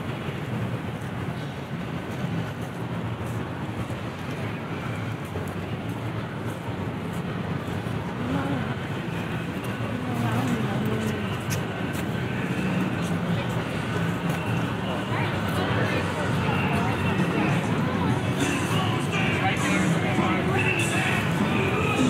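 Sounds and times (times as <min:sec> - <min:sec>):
distant traffic hum: 0:00.0 - 0:22.0
person's voice: 0:08.2 - 0:08.9, 0:09.7 - 0:11.6, 0:14.8 - 0:22.0.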